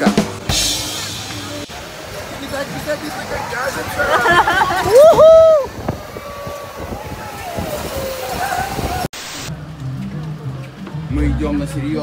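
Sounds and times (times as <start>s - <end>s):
rushing noise: 0.0s - 9.6s
riders' voices: 0.0s - 12.0s.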